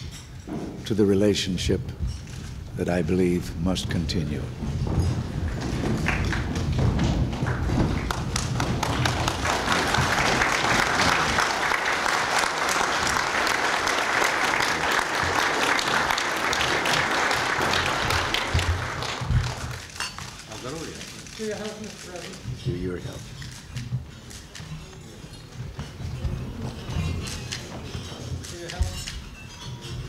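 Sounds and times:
dinner guests applauding: 5.3 - 22.8.

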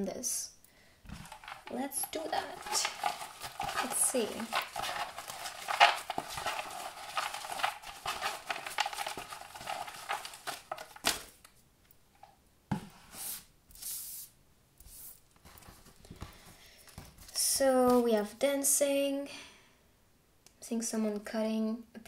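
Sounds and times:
paper cutouts rustling: 1.1 - 11.6.

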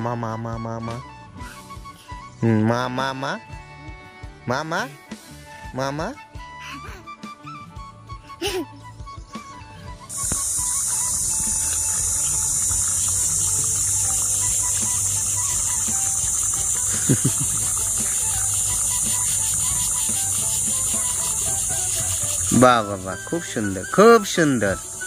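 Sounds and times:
oil sizzling in a frying pan: 10.1 - 25.0.

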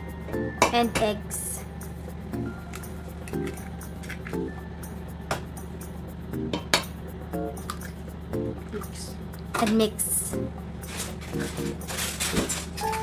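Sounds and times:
soft background tune: 0.0 - 13.0.

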